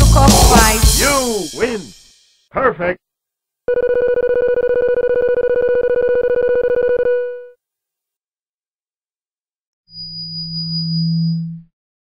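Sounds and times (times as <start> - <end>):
breakcore music: 0.0 - 2.2.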